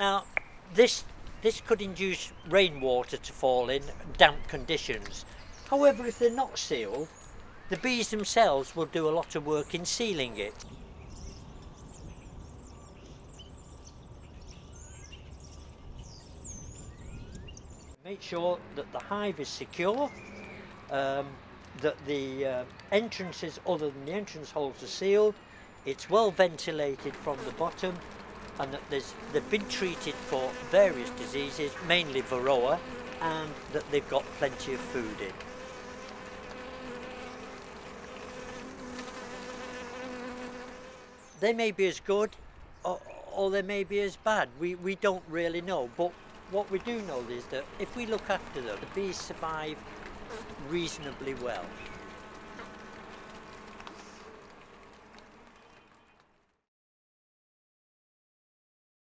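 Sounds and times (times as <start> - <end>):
small songbirds chirping: 0.0 - 18.0, 19.6 - 20.8, 42.2 - 52.3
bees humming: 25.9 - 41.4, 45.5 - 55.8.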